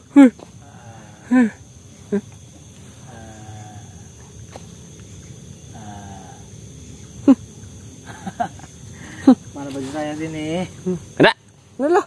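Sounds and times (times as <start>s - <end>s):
faint moaning call: 0.0s - 4.4s, 5.6s - 7.5s
steady low hum: 0.0s - 11.8s.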